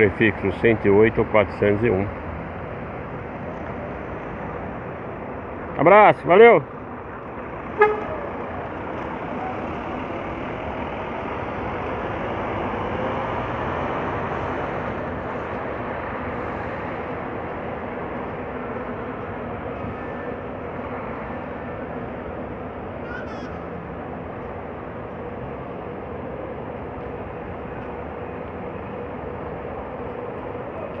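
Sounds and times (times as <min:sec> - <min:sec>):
city traffic noise: 0:00.0 - 0:31.0
coach engine driving off: 0:06.6 - 0:23.1
coach horn toot: 0:07.7 - 0:08.3.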